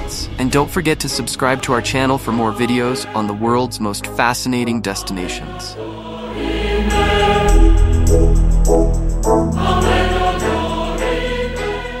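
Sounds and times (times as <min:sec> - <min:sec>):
choir holding sustained chords: 0:00.0 - 0:12.0.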